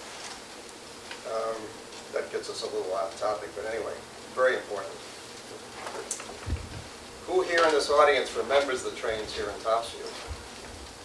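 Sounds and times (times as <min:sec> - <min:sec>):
soft low thump: 0:06.4 - 0:06.9.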